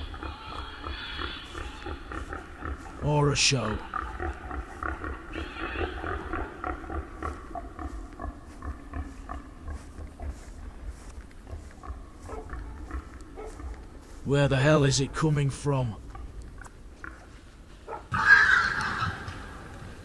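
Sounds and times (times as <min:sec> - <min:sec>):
pig-like animal calls: 0:00.0 - 0:10.4, 0:17.9 - 0:19.4
steady low rumble: 0:06.0 - 0:14.6.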